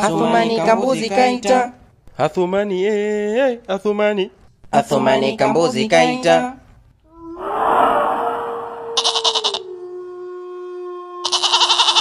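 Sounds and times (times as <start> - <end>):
goat bleating: 9.0 - 9.9, 10.6 - 12.0.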